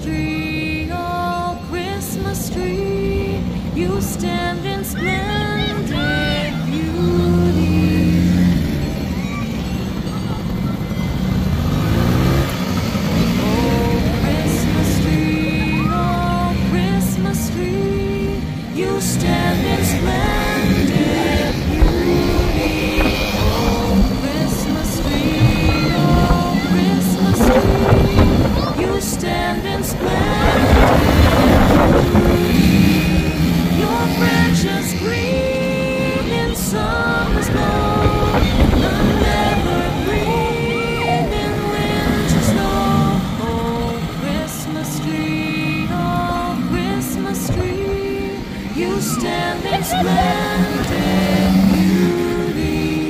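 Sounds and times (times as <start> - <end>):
background music with singing: 0.0 - 53.0
quad bike engines running: 0.0 - 53.0.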